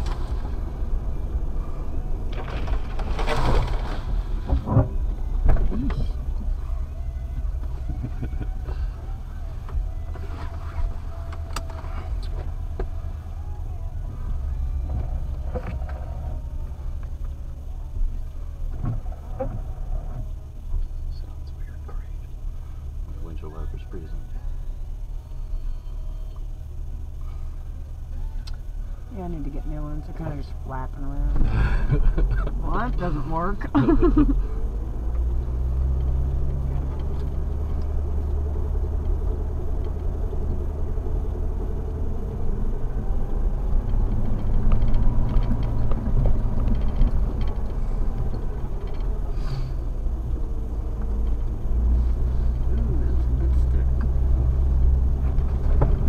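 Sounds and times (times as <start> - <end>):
vehicle engine idling: 0.0 - 56.0.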